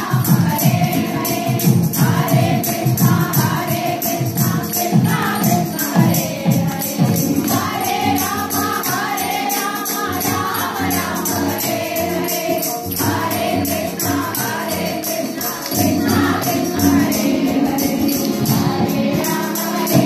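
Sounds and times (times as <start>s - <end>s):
rhythmic hand claps: 0.0s - 20.0s
women singing a chant: 0.0s - 20.0s.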